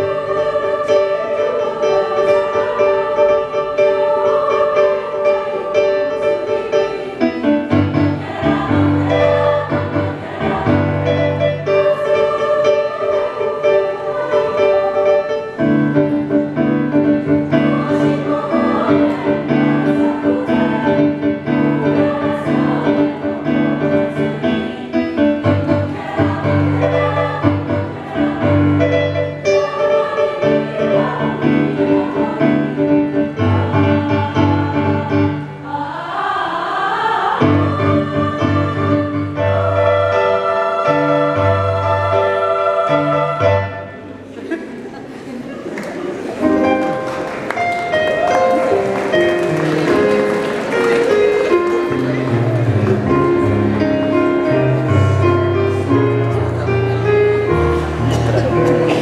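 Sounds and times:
choir singing in harmony: 0.0 - 59.0.

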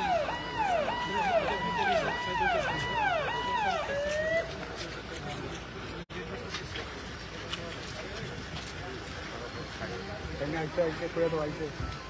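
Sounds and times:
electronic vehicle siren: 0.0 - 4.5.

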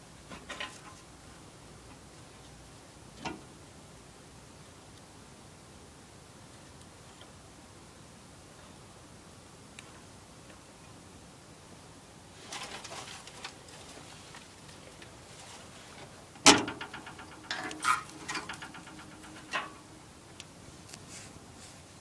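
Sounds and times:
metallic knock with rattle: 16.4 - 20.1.

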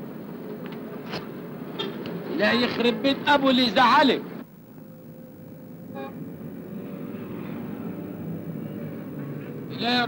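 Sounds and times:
street traffic noise: 0.0 - 10.0.

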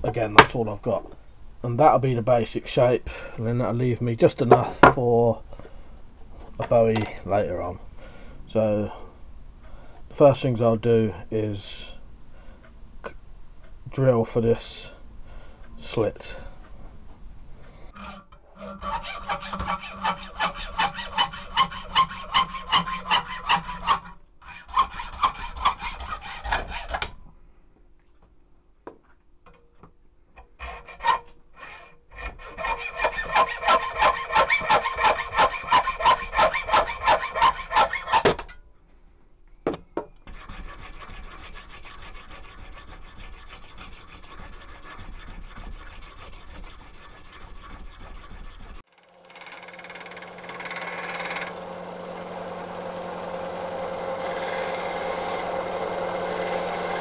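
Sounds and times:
hacksaw cutting brass: 18.0 - 27.1, 30.6 - 38.4, 40.3 - 57.0.

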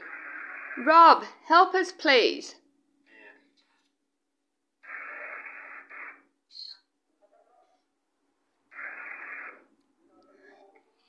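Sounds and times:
radio static hiss: 0.0 - 1.1, 4.8 - 6.7, 8.7 - 9.7.

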